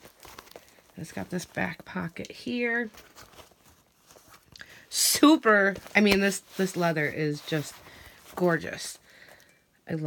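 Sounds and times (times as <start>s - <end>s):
leather handbag rustling: 0.0s - 4.5s, 5.2s - 9.4s.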